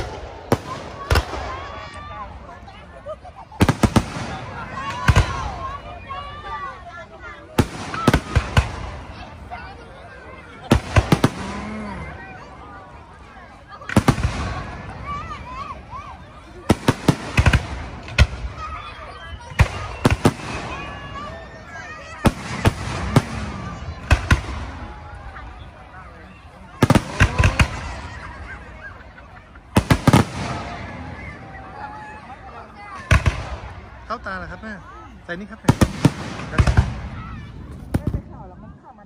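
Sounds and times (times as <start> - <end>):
fireworks bursting: 0.0 - 2.4, 3.4 - 5.8, 7.5 - 16.0, 16.6 - 34.5, 35.3 - 38.4
crowd talking: 0.0 - 39.0.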